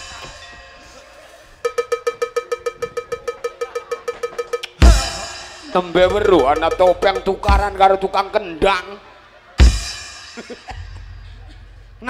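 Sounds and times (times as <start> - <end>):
cowbell struck rapidly: 1.6 - 8.2.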